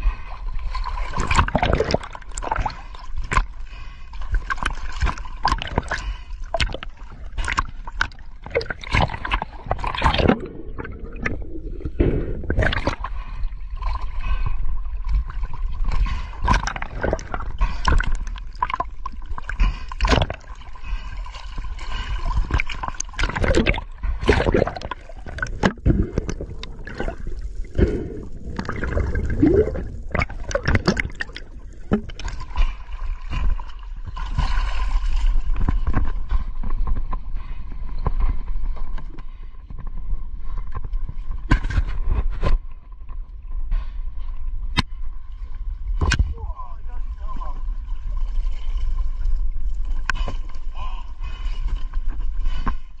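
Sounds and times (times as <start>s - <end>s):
water gurgling and sloshing: 0.0s - 53.0s
knocks and splashes: 0.9s - 3.5s, 4.5s - 14.1s, 15.1s - 21.0s, 21.6s - 37.2s, 40.6s - 42.7s.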